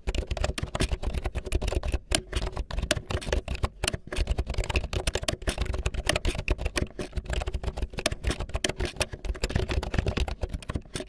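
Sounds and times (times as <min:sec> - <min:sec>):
fast typing on keyboard: 0:00.0 - 0:11.0.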